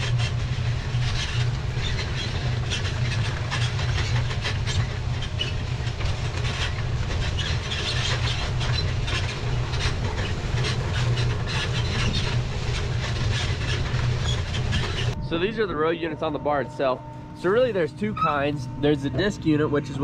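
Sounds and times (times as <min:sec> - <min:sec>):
clattering and rattling: 0:00.0 - 0:15.2
farm implement rumbling: 0:00.0 - 0:20.0.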